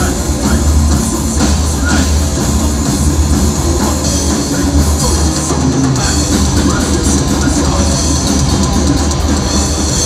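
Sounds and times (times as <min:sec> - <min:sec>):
metal band playing live: 0:00.0 - 0:10.0
rapid drum strokes: 0:00.0 - 0:10.0.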